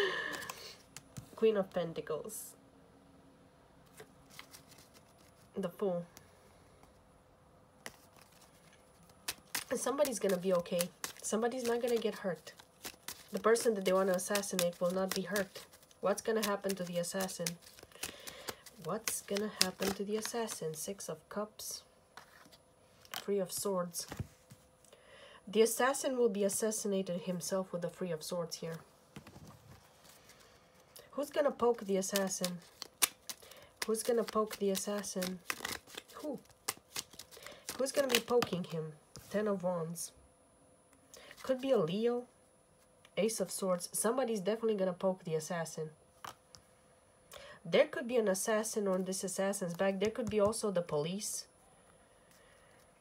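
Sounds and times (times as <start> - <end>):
cards flicking and rustling: 0.1 - 1.4, 3.9 - 5.5, 7.8 - 21.0, 22.2 - 24.6, 31.6 - 39.4
playing cards being handled: 0.1 - 1.4, 3.8 - 6.2, 7.8 - 21.0, 22.1 - 24.8, 28.7 - 39.4, 48.9 - 50.7.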